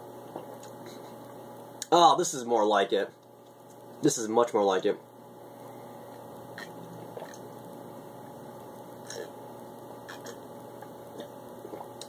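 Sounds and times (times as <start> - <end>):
low room hum: 0.0 - 12.0
man swallowing drink: 0.3 - 1.3, 6.5 - 7.7, 9.0 - 9.4, 10.0 - 12.0.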